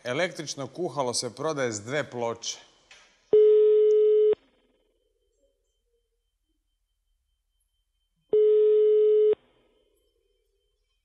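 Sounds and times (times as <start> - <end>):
telephone ringback tone: 8.3 - 9.4.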